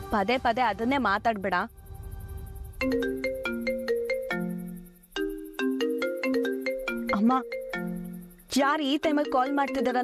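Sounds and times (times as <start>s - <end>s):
mobile phone ringtone: 1.9s - 10.0s.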